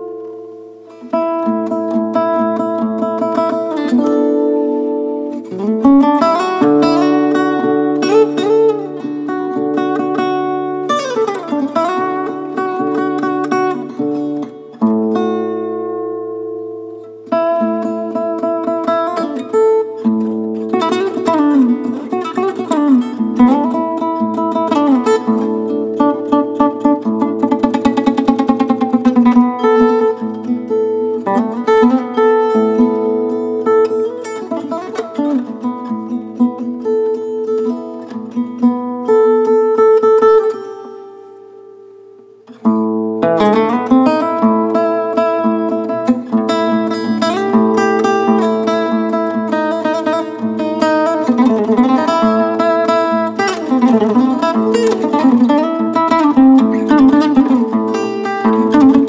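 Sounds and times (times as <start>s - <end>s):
acoustic guitar melody: 0.0s - 59.0s.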